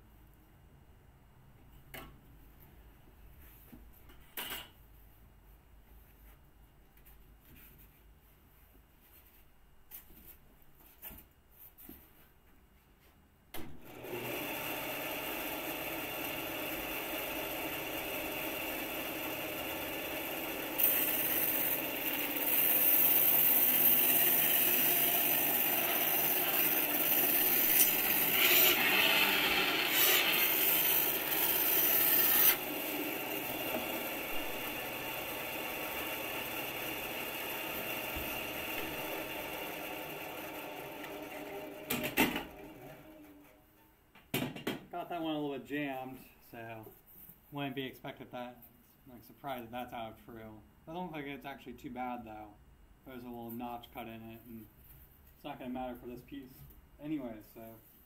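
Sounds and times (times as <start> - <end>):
power saw cutting foam board: 13.8 - 43.3.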